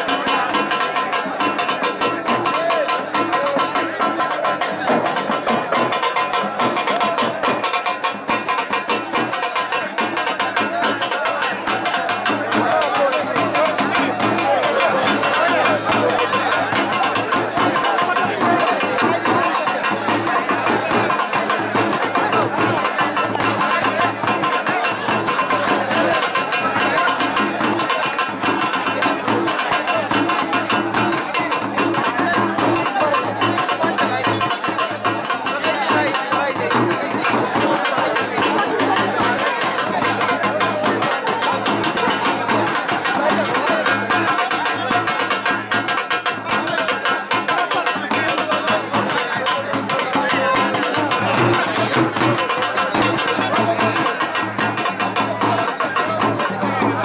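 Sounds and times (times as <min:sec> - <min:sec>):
fast drumming: 0:00.0 - 0:57.0
music: 0:00.0 - 0:57.0
voices: 0:00.0 - 0:57.0.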